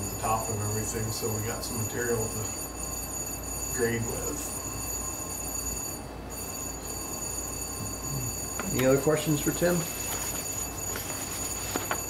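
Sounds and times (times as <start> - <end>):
high-pitched electronic whine: 7.8 - 12.0.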